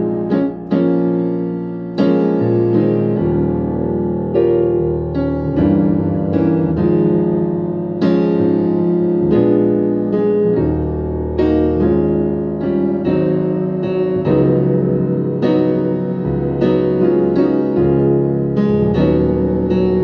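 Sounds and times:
digital piano gospel chords: 0:00.0 - 0:20.0.

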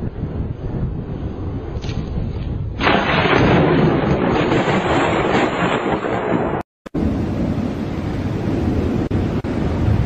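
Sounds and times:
thunder crack and rumble: 0:00.0 - 0:10.0.

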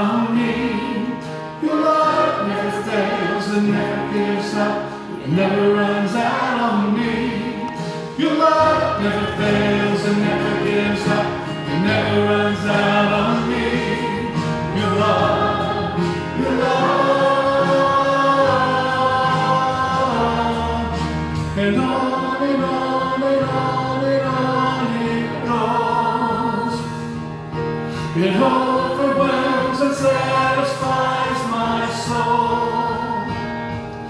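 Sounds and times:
band accompaniment: 0:00.0 - 0:34.0
choir singing worship song: 0:00.0 - 0:34.0.

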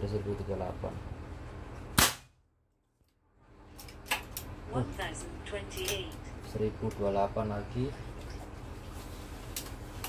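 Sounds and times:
air rifle shot: 0:02.0 - 0:02.4.

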